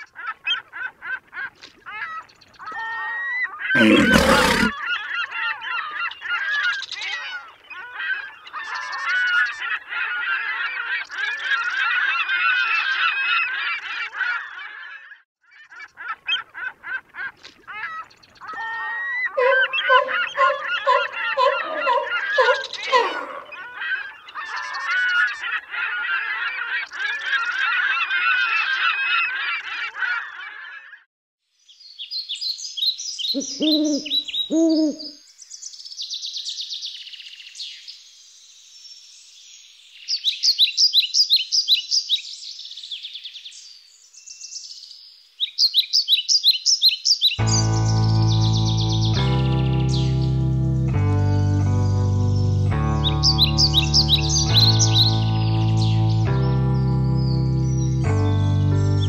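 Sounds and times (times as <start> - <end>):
waterbirds calling: 0.0 - 14.8, 15.7 - 30.8, 33.3 - 35.2, 52.9 - 59.0.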